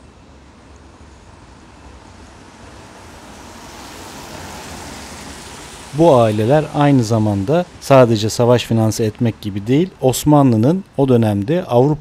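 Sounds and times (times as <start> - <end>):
rain on wet street: 0.0 - 12.0.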